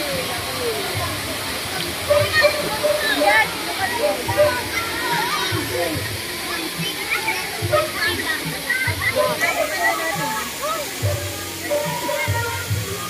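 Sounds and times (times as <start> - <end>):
people and children chatting: 0.0 - 13.0
waterfall rushing: 0.0 - 13.0.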